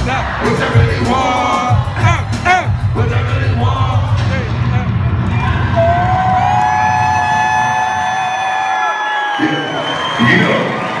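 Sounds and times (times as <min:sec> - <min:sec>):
bass-heavy beat over pa: 0:00.0 - 0:07.1
crowd shouting and cheering: 0:00.0 - 0:11.0.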